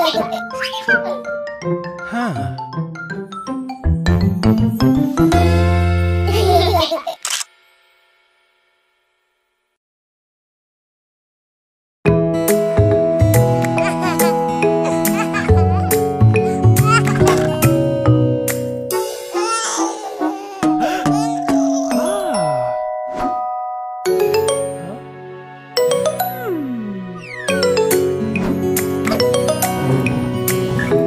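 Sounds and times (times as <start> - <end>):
cartoon music: 13.2 - 23.5, 25.8 - 30.0
bell-like chimes ringing: 21.0 - 25.0.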